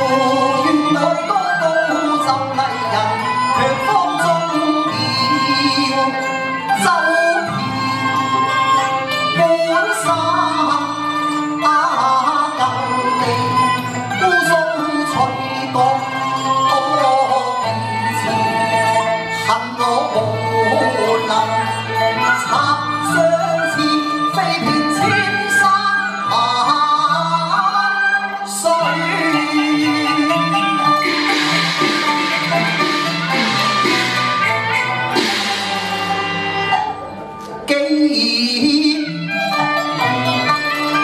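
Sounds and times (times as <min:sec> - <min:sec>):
man singing opera into microphone: 0:00.0 - 0:07.6, 0:09.4 - 0:31.0, 0:37.6 - 0:39.6
instrumental accompaniment: 0:00.0 - 0:41.0.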